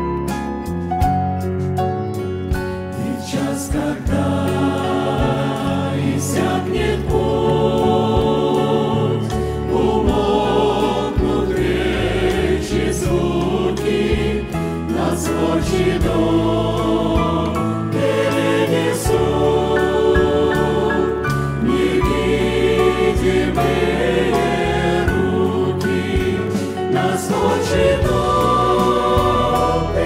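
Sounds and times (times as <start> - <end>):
instrumental backing with bass: 0.0 - 30.0
mixed choir singing a hymn: 2.9 - 30.0.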